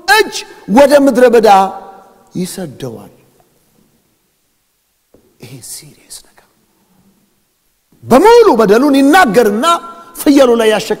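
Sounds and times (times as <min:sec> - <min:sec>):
person whispering: 0:05.4 - 0:07.2.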